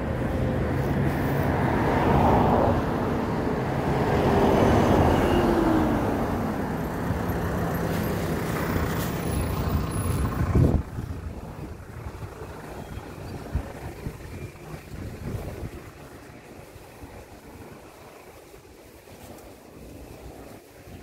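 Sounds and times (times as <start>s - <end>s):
cars driving past: 0.0s - 18.6s.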